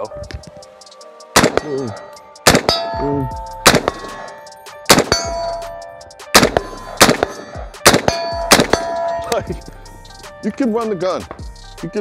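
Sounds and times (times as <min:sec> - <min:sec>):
rifle shots: 0:01.4 - 0:01.8, 0:02.4 - 0:02.9, 0:03.6 - 0:05.4, 0:06.4 - 0:09.0
steel target clanging: 0:02.5 - 0:09.5.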